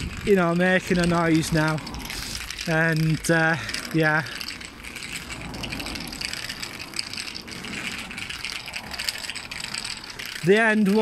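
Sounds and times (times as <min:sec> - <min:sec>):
cane tip rolling on asphalt: 0:00.0 - 0:11.0.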